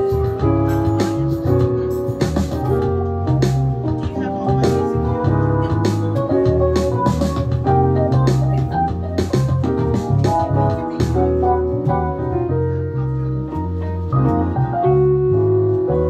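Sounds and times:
live band playing: 0.0s - 16.0s.

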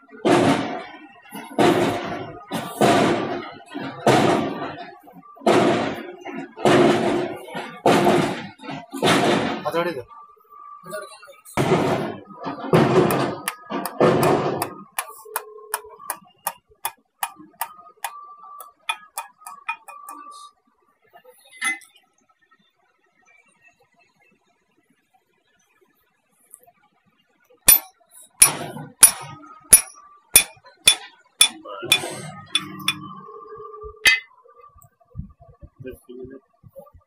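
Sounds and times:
hammer tapping on steel: 13.1s - 20.2s, 27.7s - 33.1s, 34.0s - 34.3s
steel clang with metallic ring: 27.7s - 33.2s, 34.0s - 34.3s.

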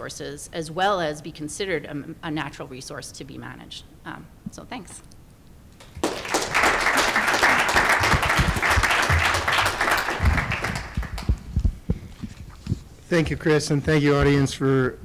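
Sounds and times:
audience applauding: 5.8s - 11.5s
low thumps: 10.2s - 13.0s.

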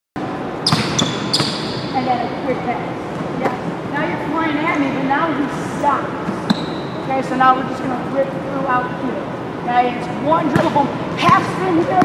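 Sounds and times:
gym background noise: 0.2s - 12.0s.

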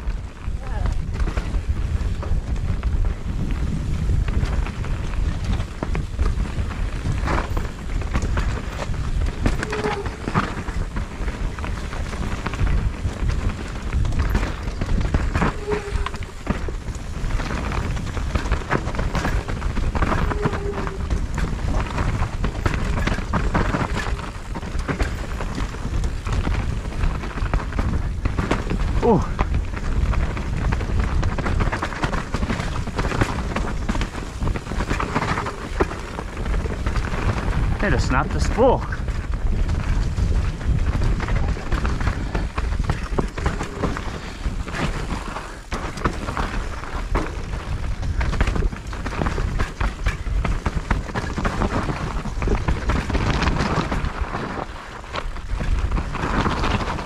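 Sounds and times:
bike knocking and rattling: 0.0s - 57.0s
wind rumble on microphone: 0.0s - 57.0s.

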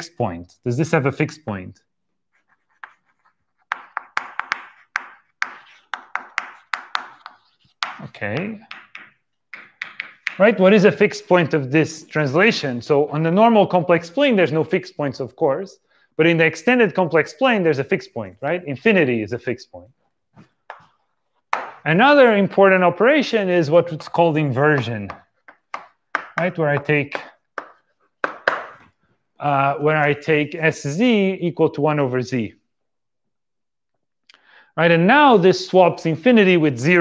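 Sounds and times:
person speaking: 0.0s - 32.6s, 34.8s - 37.0s
chalk scratching on blackboard: 2.3s - 10.3s
chalk tapping on blackboard: 2.4s - 10.4s, 20.7s - 21.8s, 24.8s - 28.9s
breath: 15.8s - 16.2s, 34.3s - 34.8s.

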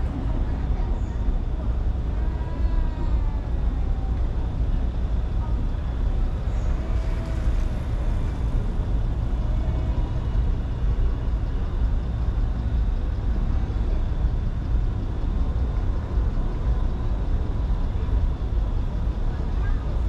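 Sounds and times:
city traffic rumble: 0.0s - 20.0s.

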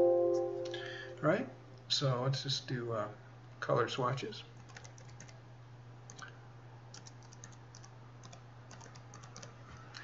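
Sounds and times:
low electrical hum: 0.0s - 10.0s
faint keyboard typing: 4.6s - 5.4s, 6.1s - 10.0s.

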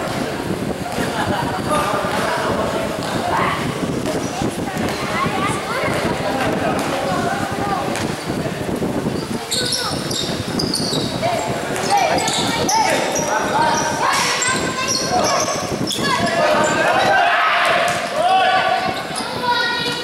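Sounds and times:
people shouting in echoing hall: 12.7s - 19.8s.

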